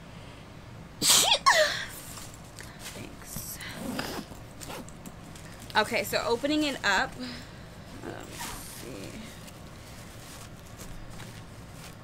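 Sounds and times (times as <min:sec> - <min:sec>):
bag rustling: 0:02.0 - 0:12.0
backpack zipper opening: 0:03.6 - 0:05.2.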